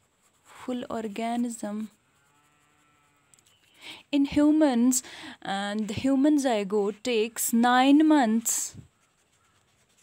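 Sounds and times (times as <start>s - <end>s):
faint drawn-out pitched call: 8.8s - 10.0s.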